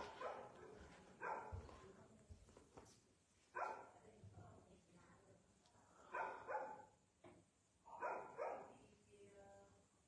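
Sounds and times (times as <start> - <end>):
dog barking: 0.0 - 0.6, 1.2 - 1.6, 3.6 - 3.9, 6.1 - 6.9, 7.9 - 8.7.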